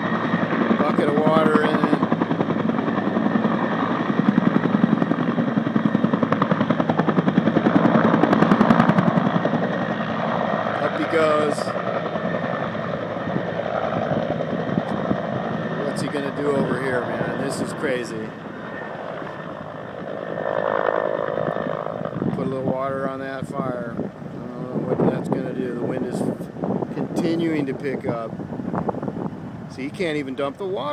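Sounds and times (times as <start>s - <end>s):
helicopter rotor beating: 0.0s - 30.9s.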